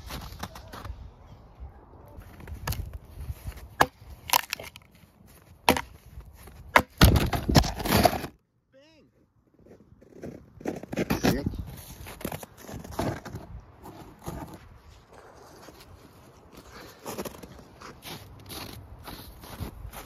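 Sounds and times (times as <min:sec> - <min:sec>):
log splintering crunch: 0:02.2 - 0:08.4.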